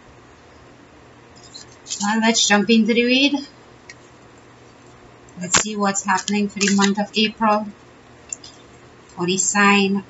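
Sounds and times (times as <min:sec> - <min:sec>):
cards being shuffled: 0:05.4 - 0:07.0.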